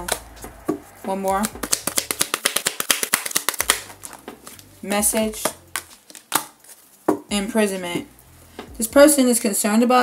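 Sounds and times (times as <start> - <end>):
cards being shuffled: 0.0 - 7.0.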